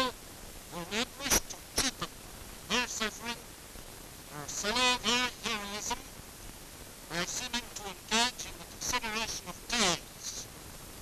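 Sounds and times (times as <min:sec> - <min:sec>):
man speaking: 0:02.7 - 0:03.4, 0:04.4 - 0:06.1, 0:07.1 - 0:10.4.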